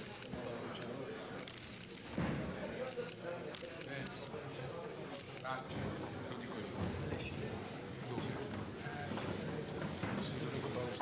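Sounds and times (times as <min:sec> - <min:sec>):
camera shutters clicking: 0:01.4 - 0:02.2, 0:02.8 - 0:04.3.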